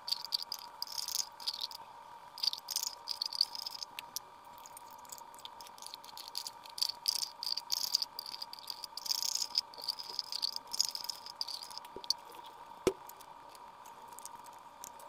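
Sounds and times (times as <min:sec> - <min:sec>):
faint high hum: 0:00.0 - 0:15.0.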